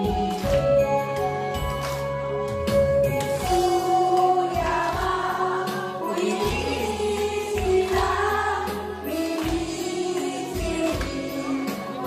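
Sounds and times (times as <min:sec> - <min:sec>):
music backing track: 0:00.0 - 0:12.0
woman singing into microphone: 0:03.4 - 0:12.0
voices singing along: 0:03.7 - 0:12.0.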